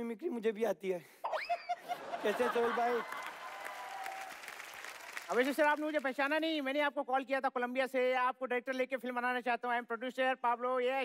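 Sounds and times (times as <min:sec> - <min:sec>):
audience applauding: 0:02.3 - 0:06.0.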